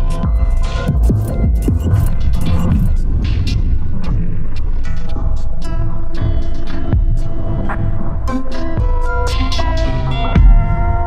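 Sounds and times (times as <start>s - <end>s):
experimental electronic music: 0.0s - 11.0s.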